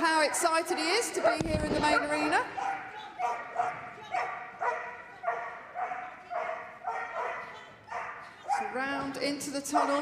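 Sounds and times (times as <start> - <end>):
dog barking: 2.0 - 8.8, 9.7 - 10.0.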